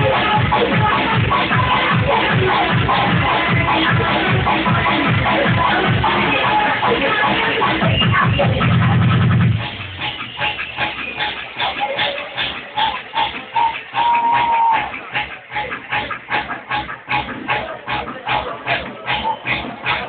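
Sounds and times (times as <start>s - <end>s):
heavy bass: 0.0s - 20.0s
muffled electronic dance music: 0.0s - 20.0s.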